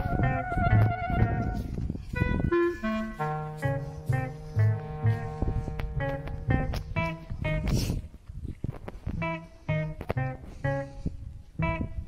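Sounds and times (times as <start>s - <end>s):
slow melody of held notes: 0.0s - 7.8s, 9.1s - 12.0s
sustained low bass note: 2.5s - 7.7s.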